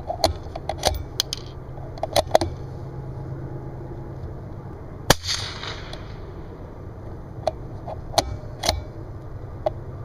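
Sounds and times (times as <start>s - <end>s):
rifle bolt metal clicks: 8.2s - 8.9s.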